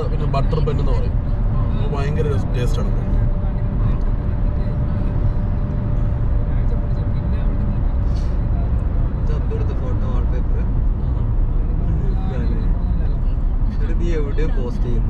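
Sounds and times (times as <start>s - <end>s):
car tyre and engine rumble: 0.0s - 15.0s.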